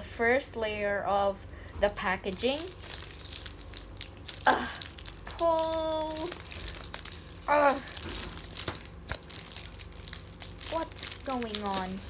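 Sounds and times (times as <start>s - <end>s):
plastic wrapper crinkling: 2.2s - 12.0s.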